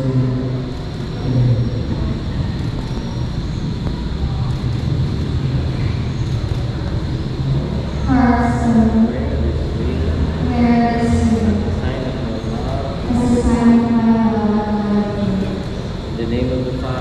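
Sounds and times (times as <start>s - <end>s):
low rumble: 0.0s - 17.0s
murmured voices: 0.0s - 17.0s.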